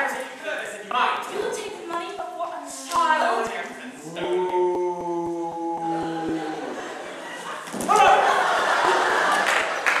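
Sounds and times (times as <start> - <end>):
person imitating cow moo: 4.0 - 6.8
loud vocal cry: 4.0 - 7.0.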